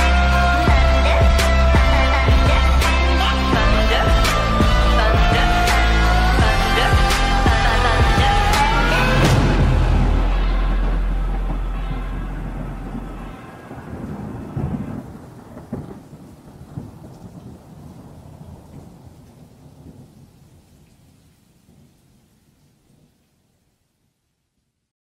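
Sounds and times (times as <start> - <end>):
rolling thunder: 0.0 - 20.6
rain: 0.0 - 24.9
deep held bass note: 0.7 - 13.4.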